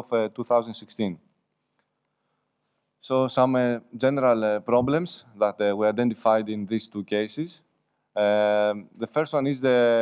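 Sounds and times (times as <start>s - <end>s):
man speaking: 0.0s - 1.2s, 3.0s - 7.6s, 8.2s - 10.0s.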